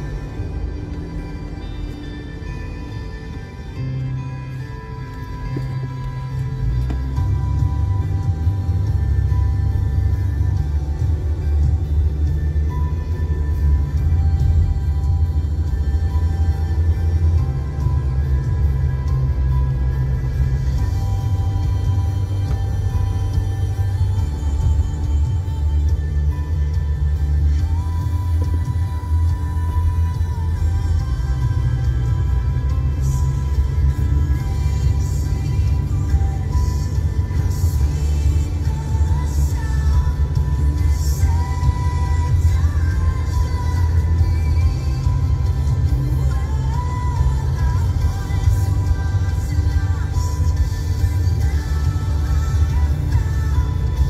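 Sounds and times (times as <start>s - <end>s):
deep bass held notes: 0.0s - 54.0s.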